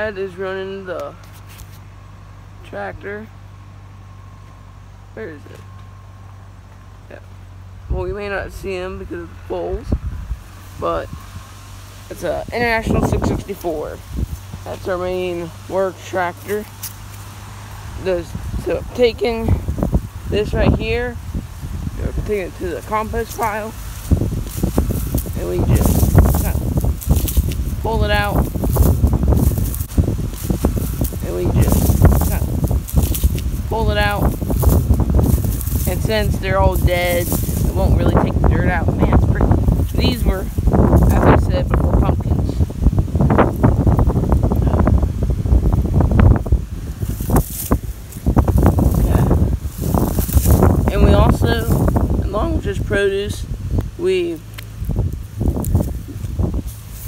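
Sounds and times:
low steady rumble: 0:00.0 - 0:57.0
dry seedlings crackling and rustling: 0:00.7 - 0:02.0, 0:08.3 - 0:57.0
wind buffeting microphone: 0:07.8 - 0:57.0.

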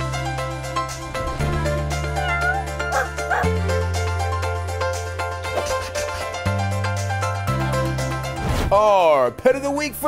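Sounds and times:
background music with bass line: 0:00.0 - 0:08.8
cat meowing: 0:02.1 - 0:03.5.

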